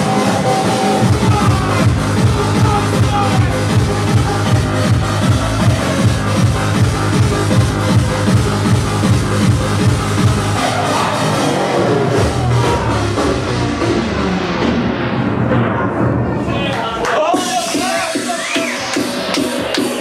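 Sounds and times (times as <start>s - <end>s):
hard dance music: 0.0s - 20.0s.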